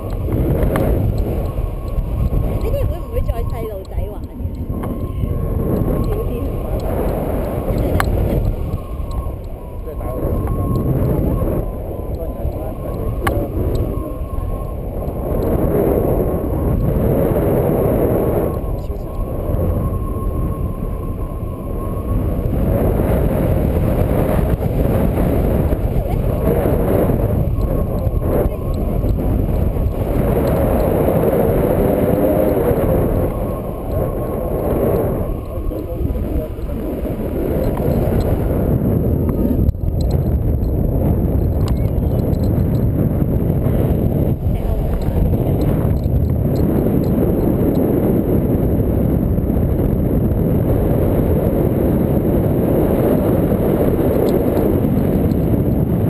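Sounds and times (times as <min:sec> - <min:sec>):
wind rushing over microphone: 0:00.0 - 0:56.0.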